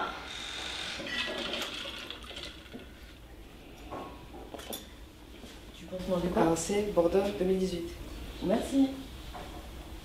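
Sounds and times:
ice and water rattling and sloshing: 0:01.1 - 0:03.2.

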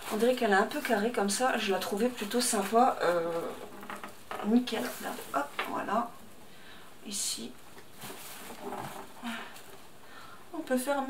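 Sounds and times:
plastic film rustling: 0:00.0 - 0:06.1, 0:07.7 - 0:09.9.

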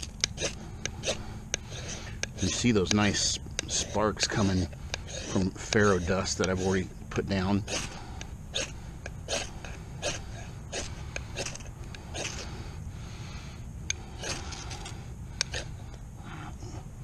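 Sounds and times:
knife scraping ferro rod: 0:00.0 - 0:06.8.

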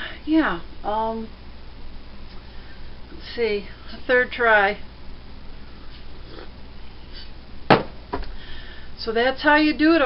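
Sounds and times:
mug set down click and thud: 0:07.7 - 0:08.3.

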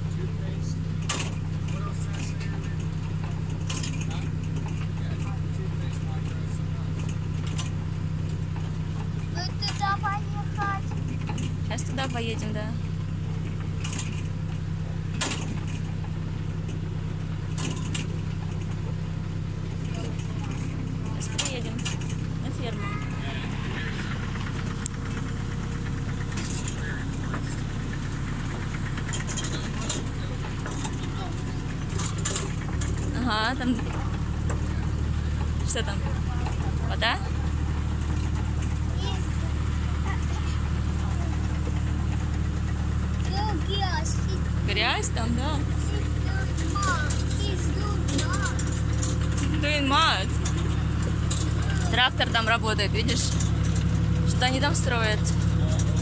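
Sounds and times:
tractor engine droning: 0:00.0 - 0:56.0.

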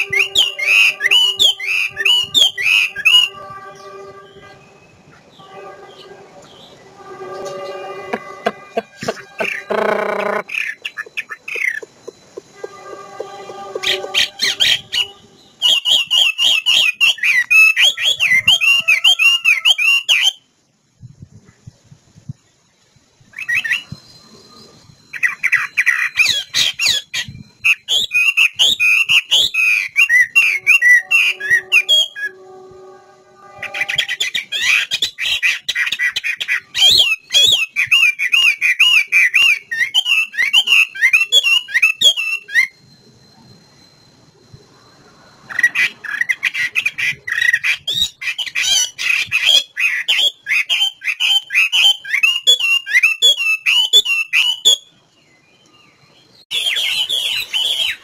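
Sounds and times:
bird singing whistled phrases: 0:00.0 - 0:05.0, 0:07.5 - 0:20.5, 0:23.4 - 0:35.6, 0:36.5 - 0:42.8, 0:45.5 - 0:55.0, 0:56.4 - 0:58.0
low steady bird call: 0:00.0 - 0:20.5, 0:21.4 - 0:58.0.

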